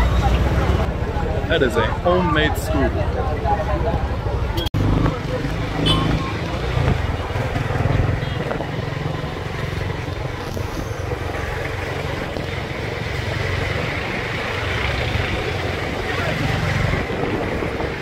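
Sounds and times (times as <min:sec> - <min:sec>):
road noise: 0:00.0 - 0:18.0
motorcycle engine rumble: 0:03.0 - 0:18.0
wind rushing over microphone: 0:06.2 - 0:18.0.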